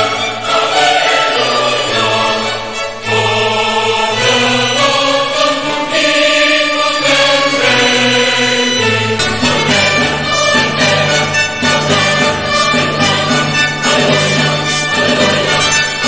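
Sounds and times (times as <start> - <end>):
choir singing slow chords: 0.0 - 16.0.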